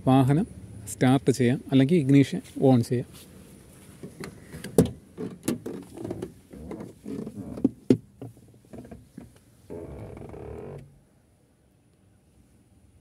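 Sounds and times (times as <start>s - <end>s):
knocks and clicks in car: 4.0s - 9.4s.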